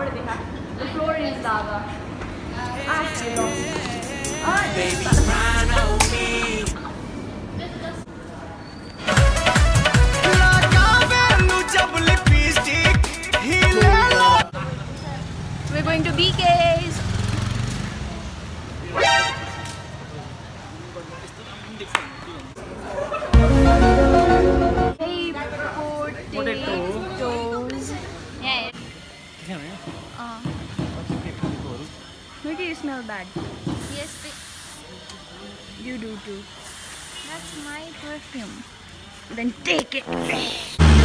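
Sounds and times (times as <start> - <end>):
voices: 0.0 - 8.9
perfume spray hissing: 33.7 - 35.0, 35.8 - 38.6.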